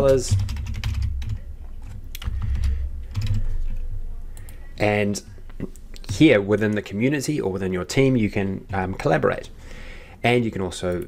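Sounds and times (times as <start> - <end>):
typing on computer keyboard: 0.0 - 1.4, 2.2 - 3.6
low steady hum: 0.0 - 11.0.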